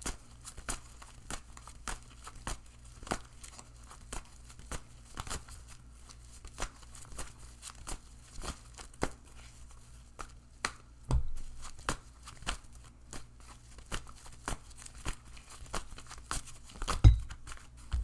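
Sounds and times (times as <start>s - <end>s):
cards being shuffled: 0.0s - 10.8s, 11.4s - 18.0s
dull thump: 17.0s - 17.4s.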